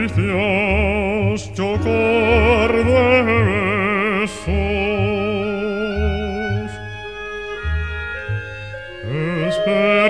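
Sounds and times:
orchestra holding chords: 0:00.0 - 0:10.0.

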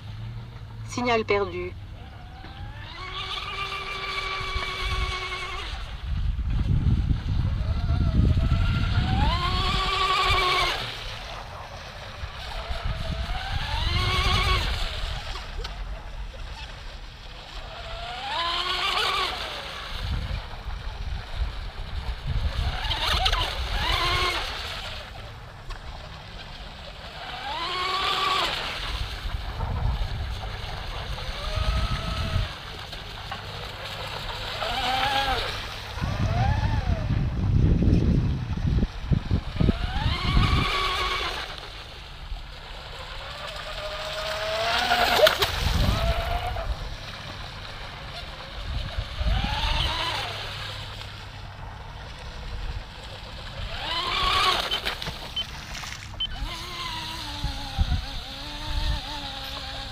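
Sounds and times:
model boat motor whining: 0:00.0 - 0:59.9
wind rumbling on microphone: 0:00.0 - 0:59.9.

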